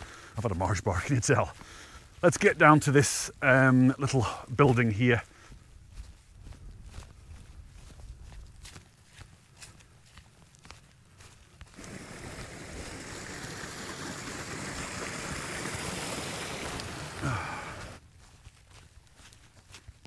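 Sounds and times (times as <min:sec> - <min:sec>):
footsteps on grass: 0:00.0 - 0:13.3, 0:16.4 - 0:20.0
water running over stones: 0:11.8 - 0:18.0.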